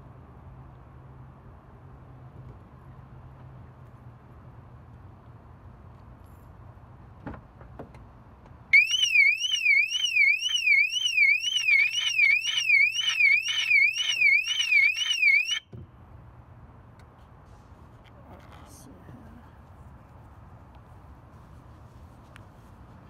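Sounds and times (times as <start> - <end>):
car alarm warbling: 8.8 - 15.7.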